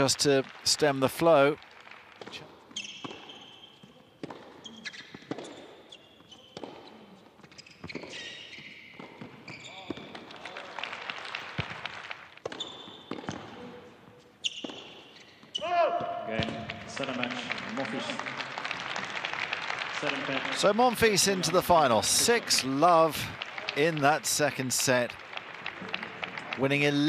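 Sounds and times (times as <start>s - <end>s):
shoes squeaking on court: 2.2s - 10.3s, 12.4s - 16.6s
tennis ball bounces: 2.2s - 10.3s, 12.4s - 13.6s, 14.5s - 15.3s
loud shout: 15.6s - 16.3s.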